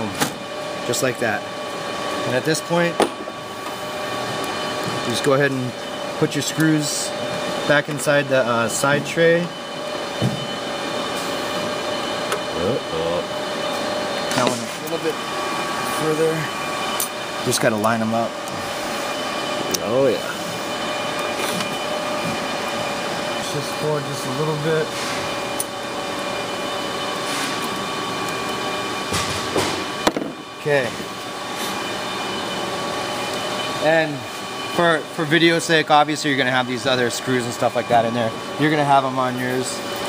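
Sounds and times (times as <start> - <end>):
ventilation fan hum: 0.0 - 40.0.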